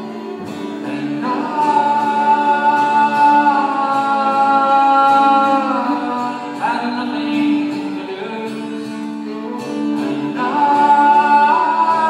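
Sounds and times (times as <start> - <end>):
people singing: 0.0 - 8.6, 9.3 - 12.0
acoustic guitar: 0.0 - 12.0
fiddle: 0.0 - 12.0.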